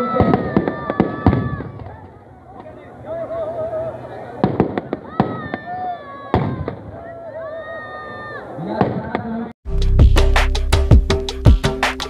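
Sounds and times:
firecrackers bursting with sharp bangs: 0.0s - 2.2s, 4.4s - 7.0s.

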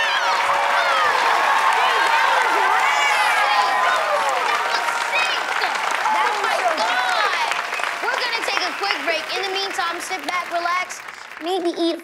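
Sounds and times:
children cheering: 0.0s - 11.2s
applause: 0.0s - 12.0s.

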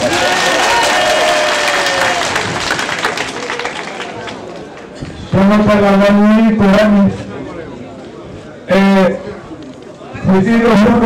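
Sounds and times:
crowd clapping: 0.0s - 5.1s.

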